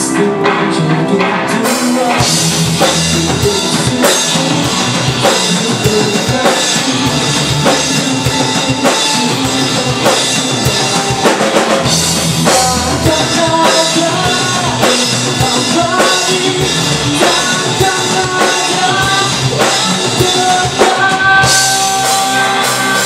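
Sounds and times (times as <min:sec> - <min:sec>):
bass guitar: 0:00.0 - 0:23.0
drum kit beat: 0:00.0 - 0:23.0
electric guitars: 0:00.0 - 0:23.0.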